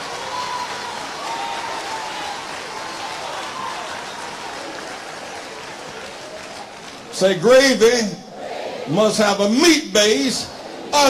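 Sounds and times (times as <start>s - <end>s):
congregation applauding: 0.0s - 7.9s.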